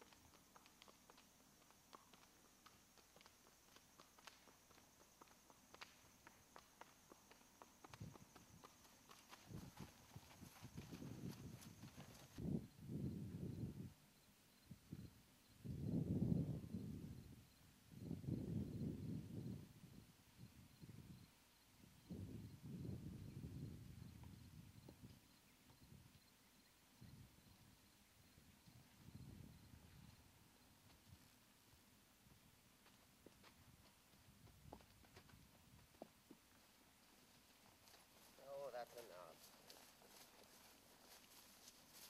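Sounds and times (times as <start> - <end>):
hooves clip-clopping on asphalt: 0.0 - 12.5, 27.4 - 42.0.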